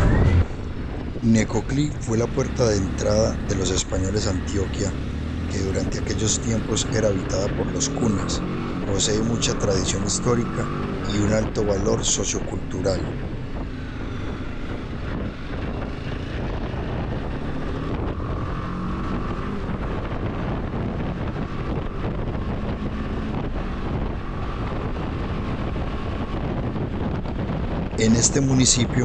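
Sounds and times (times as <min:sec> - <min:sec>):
motorcycle engine drone: 0:00.0 - 0:29.0
wind rush over microphone: 0:00.0 - 0:29.0.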